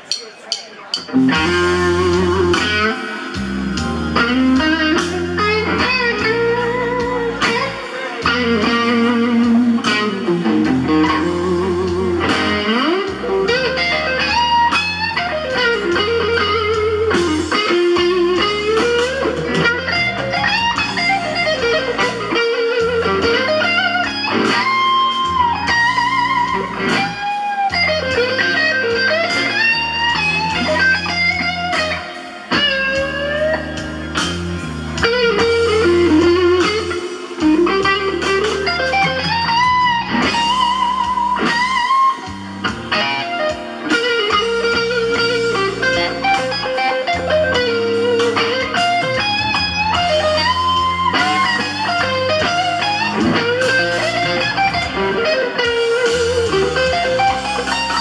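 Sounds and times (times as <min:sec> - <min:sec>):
electric guitar blues lead: 0:00.0 - 0:58.0
low bass accompaniment: 0:01.1 - 0:24.4.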